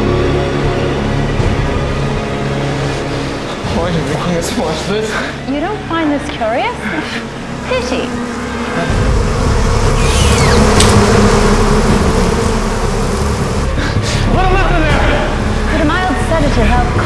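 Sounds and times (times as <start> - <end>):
shrill gliding cries: 7.3 - 13.7.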